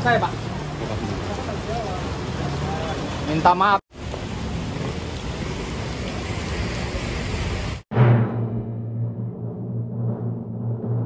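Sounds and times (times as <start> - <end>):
rain on pavement: 0.0 - 7.8.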